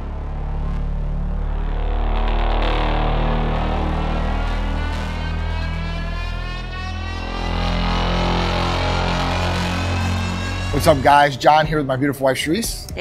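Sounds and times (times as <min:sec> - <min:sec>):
layered tone rising in pitch: 0:00.0 - 0:13.0
low drone music: 0:00.0 - 0:13.0.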